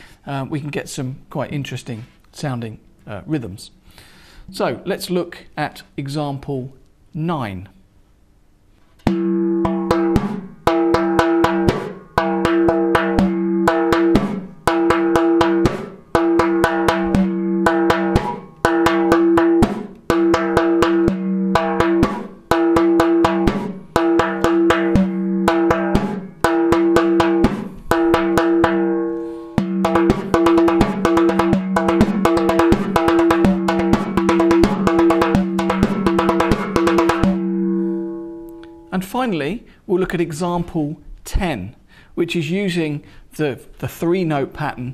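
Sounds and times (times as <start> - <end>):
frame drum played by hand: 9.0 - 38.8.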